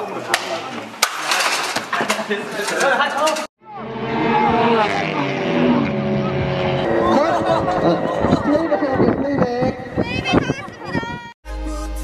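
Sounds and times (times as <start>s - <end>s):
race car engines: 3.7s - 9.1s.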